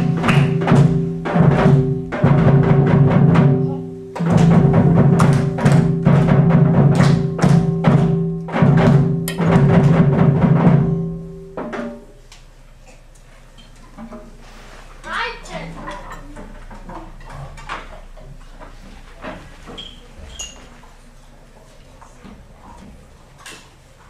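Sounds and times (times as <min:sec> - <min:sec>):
drum beats: 0:00.0 - 0:12.2.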